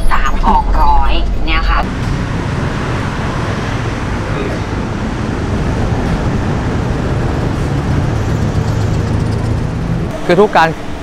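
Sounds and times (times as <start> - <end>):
road traffic noise: 0.0 - 11.0
bus driving past: 1.2 - 11.0.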